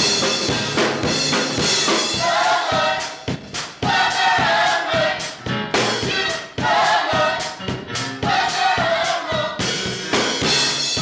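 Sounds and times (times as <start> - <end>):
drum kit: 0.0 - 11.0
gospel choir singing: 1.6 - 11.0.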